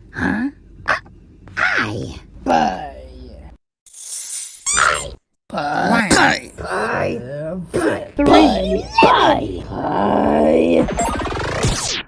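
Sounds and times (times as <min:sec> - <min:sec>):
cartoon character groan: 0:05.5 - 0:10.9
cartoon character cry: 0:08.2 - 0:09.4.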